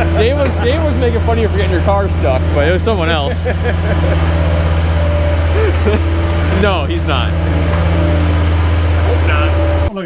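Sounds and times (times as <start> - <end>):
person laughing: 0.0 - 1.0, 3.2 - 4.5, 5.5 - 6.2
engine idling: 0.0 - 9.9.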